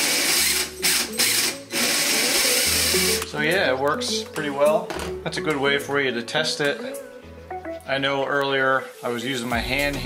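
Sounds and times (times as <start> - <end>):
electric motor spinning drivetrain: 0.0 - 3.2.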